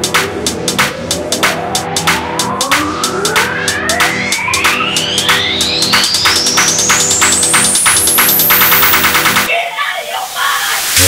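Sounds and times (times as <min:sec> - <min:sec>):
drum beat: 0:00.0 - 0:09.5
synth riser: 0:00.0 - 0:09.5.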